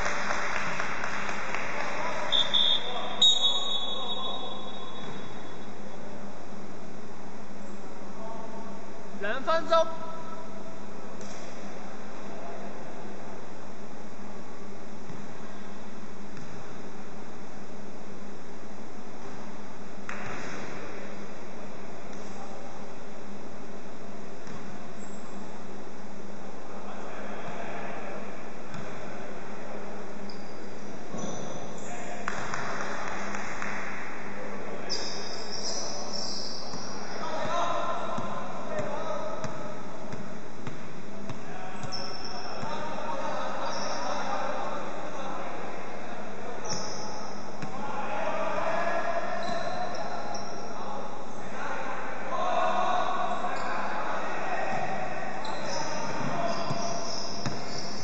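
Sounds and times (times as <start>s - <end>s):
players calling out: 34.9s - 45.7s, 46.6s - 58.0s
basketball bouncing on wooden court: 38.1s - 42.8s, 55.6s - 58.0s.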